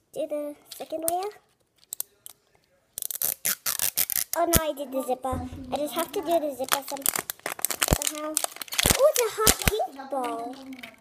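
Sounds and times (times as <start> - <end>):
plastic wrapping crinkling: 1.5 - 4.7, 5.5 - 11.0.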